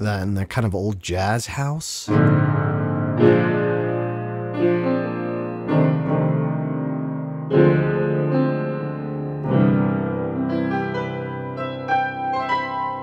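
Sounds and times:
slow jazz piano chords: 0:02.1 - 0:13.0.

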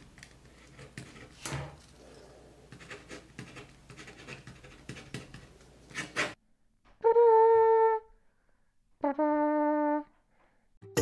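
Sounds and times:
pen writing on paper: 0:02.7 - 0:05.4.

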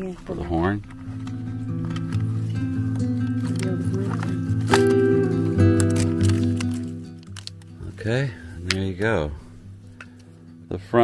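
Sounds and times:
sustained chords music: 0:00.0 - 0:11.0.

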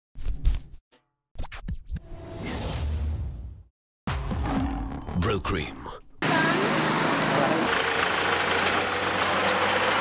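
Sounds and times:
commercial soundtrack music: 0:00.3 - 0:06.0.

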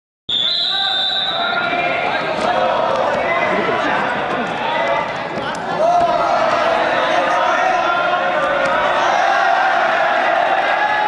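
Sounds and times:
referee's whistle blast: 0:00.3 - 0:01.8
voices in echoing hall: 0:00.3 - 0:11.0.

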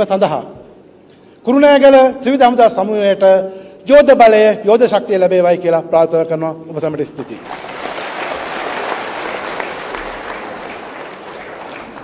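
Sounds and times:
audience applauding: 0:07.4 - 0:12.0.

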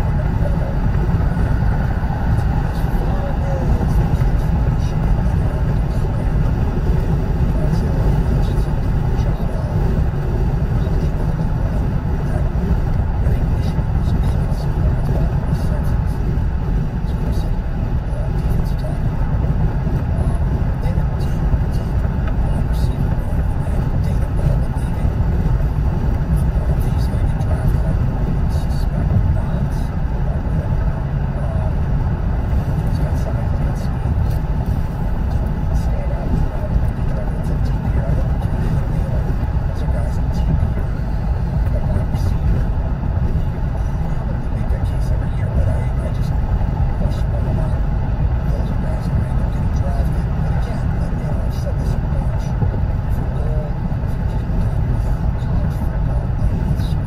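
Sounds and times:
road and engine noise in car: 0:00.0 - 0:57.0.

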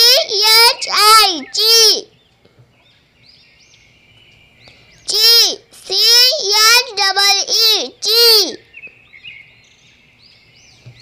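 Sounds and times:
person speaking: 0:00.0 - 0:02.1, 0:05.1 - 0:08.6
faint bird chirps: 0:00.0 - 0:11.0.

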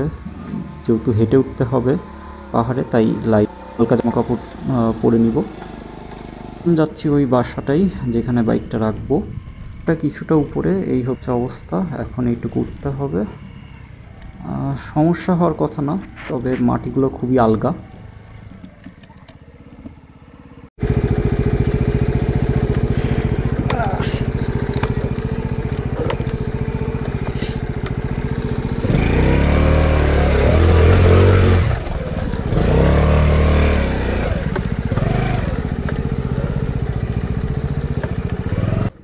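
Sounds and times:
scooter engine idling and revving: 0:00.0 - 0:39.0.

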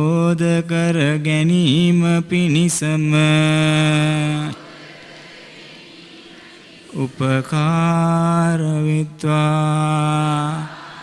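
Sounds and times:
monk chanting: 0:00.0 - 0:04.6, 0:06.9 - 0:11.0.

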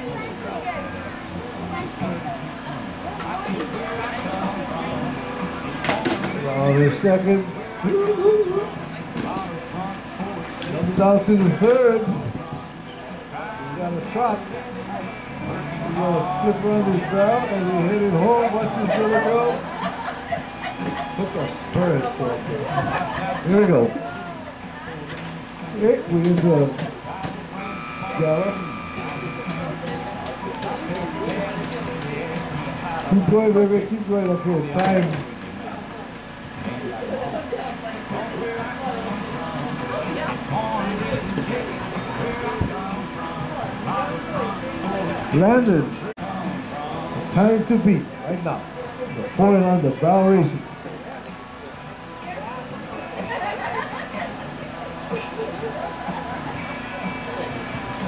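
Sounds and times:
people talking and calling out: 0:00.0 - 0:58.0
man laughing and talking: 0:06.8 - 0:08.8, 0:22.4 - 0:24.1, 0:53.0 - 0:54.6
high tone: 0:27.5 - 0:31.0.

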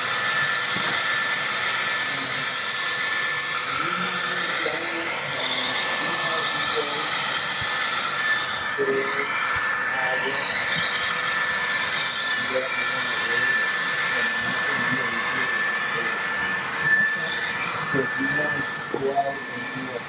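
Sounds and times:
model train motor whine: 0:00.0 - 0:20.0.

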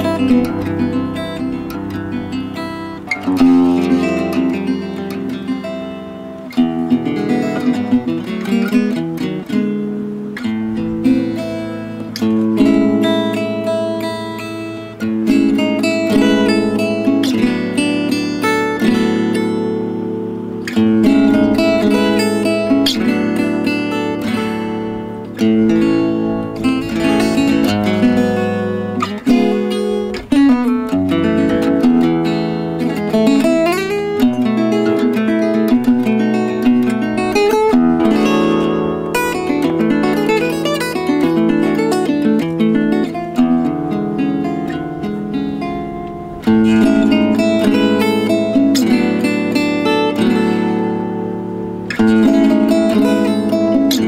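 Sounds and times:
acoustic guitar jazz playing: 0:00.0 - 0:54.0.

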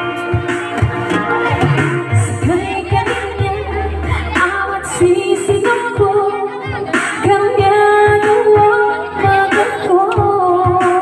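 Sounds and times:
electronic keyboard: 0:00.0 - 0:11.0
steady drum beat: 0:00.1 - 0:11.0
woman singing into microphone: 0:01.6 - 0:11.0.

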